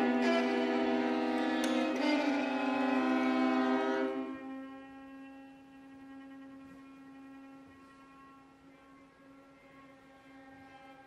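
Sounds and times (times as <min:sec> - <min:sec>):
single bowed note: 0:00.0 - 0:11.0
string ensemble sustained chord: 0:00.0 - 0:11.0.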